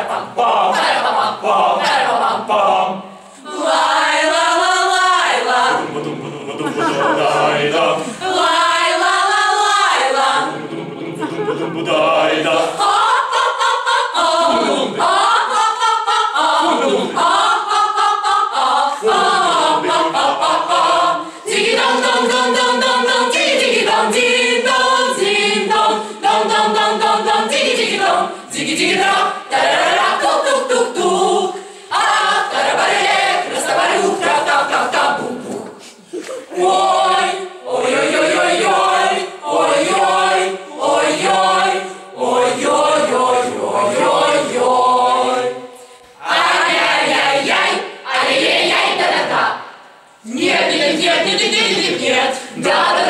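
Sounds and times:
mixed choir singing a cappella: 0.0s - 53.0s.

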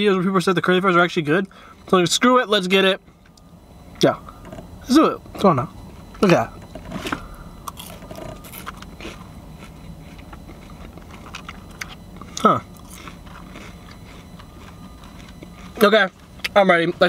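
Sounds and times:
person chewing crunchy fry: 6.7s - 16.6s.

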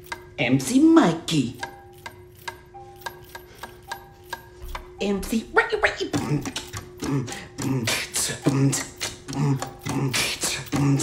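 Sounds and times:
beatbox mouth clicks: 6.1s - 11.0s.

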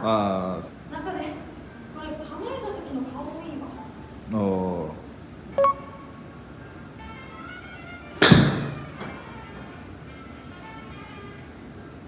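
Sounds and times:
golf club striking ball: 8.2s - 9.1s.

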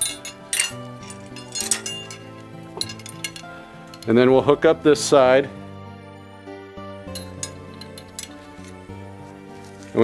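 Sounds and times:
metal hardware clinking: 0.0s - 4.3s, 7.1s - 9.0s
background music: 0.0s - 10.0s.

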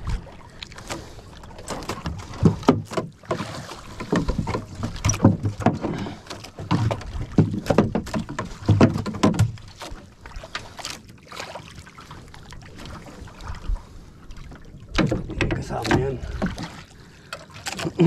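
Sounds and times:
water splashing against boat hull: 0.0s - 18.0s.

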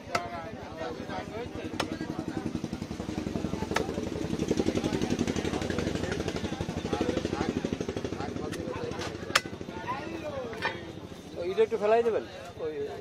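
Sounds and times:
voices: 0.0s - 13.0s
small engine running: 1.4s - 11.2s.

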